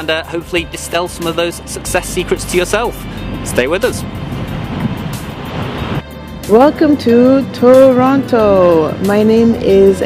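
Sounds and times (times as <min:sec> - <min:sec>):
steady rushing noise: 0:01.7 - 0:09.8.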